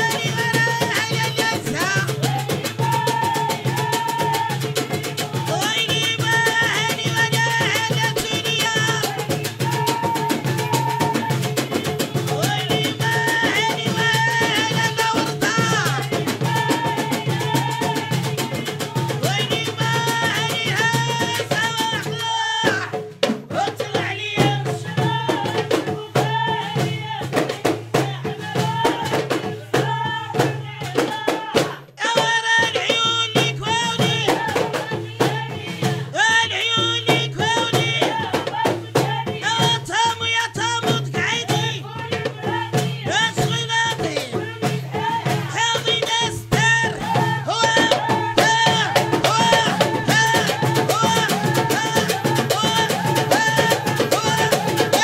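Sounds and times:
goblet hand drums: 0.0s - 55.0s
women singing together: 0.0s - 55.0s.

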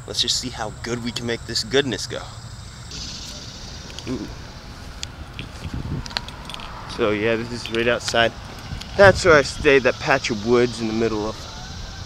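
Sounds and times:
road traffic rumble: 0.0s - 12.0s
footsteps through brush and grass: 2.9s - 7.1s.

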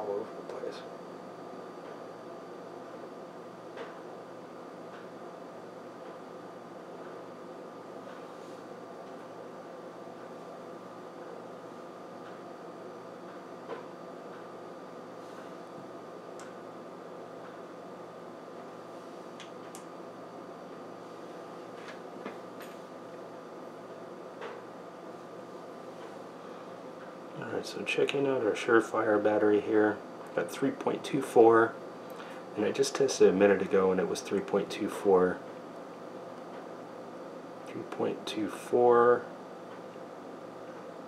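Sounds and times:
steady room hum: 0.0s - 41.0s.

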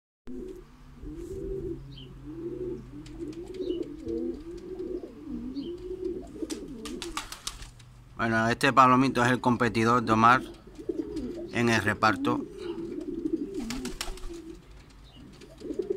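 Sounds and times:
pigeon cooing: 0.3s - 7.4s, 10.2s - 15.9s.

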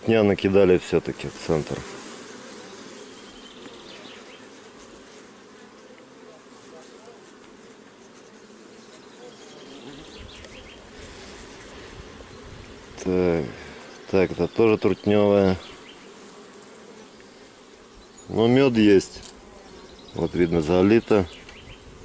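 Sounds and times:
bees buzzing: 0.0s - 22.0s
single bees flying past: 0.0s - 22.0s.

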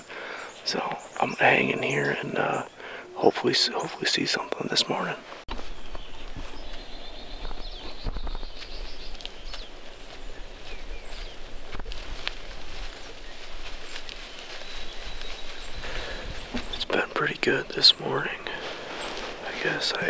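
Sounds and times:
rustling hiss: 2.6s - 20.0s
faint clicks and rustles: 5.3s - 17.5s
wind rumble on microphone: 5.6s - 13.9s.

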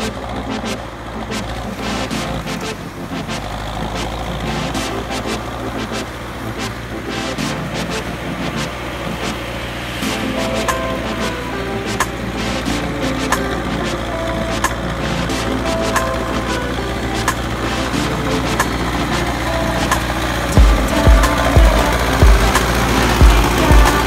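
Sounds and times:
music: 0.0s - 24.0s
tractor diesel engine running: 0.0s - 24.0s.

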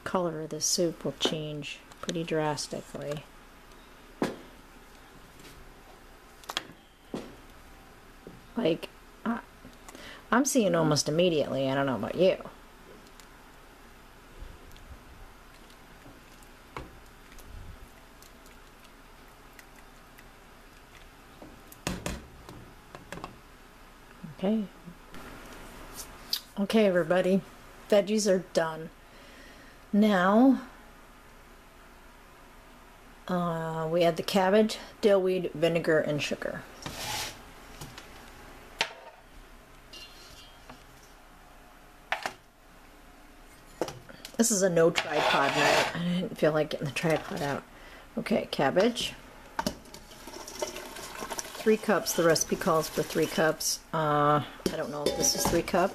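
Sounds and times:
cabbage rustling in a bowl: 50.0s - 53.7s
spoon knocking metal pot: 54.7s - 55.7s.

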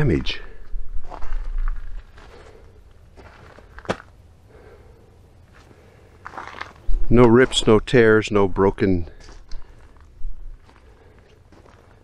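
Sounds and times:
quiet rustling and shuffling: 0.0s - 4.2s, 5.4s - 12.0s.

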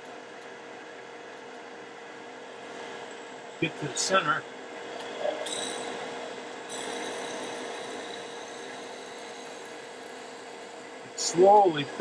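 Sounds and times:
wood lathe humming: 5.5s - 11.7s.

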